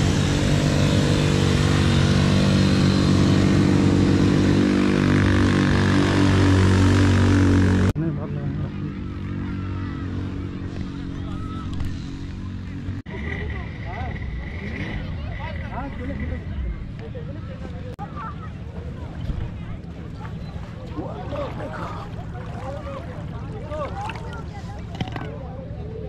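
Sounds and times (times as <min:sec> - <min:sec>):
quad bike engines running: 0:00.0 - 0:26.0
faint distant voices: 0:08.0 - 0:26.0.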